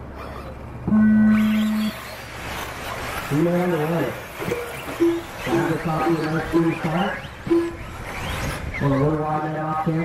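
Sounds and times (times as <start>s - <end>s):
electronic start beep: 0.9s - 2.0s.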